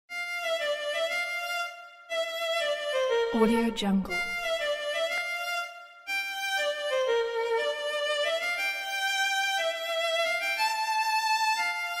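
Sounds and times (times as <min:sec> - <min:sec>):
violin melody of held notes: 0:00.1 - 0:12.0.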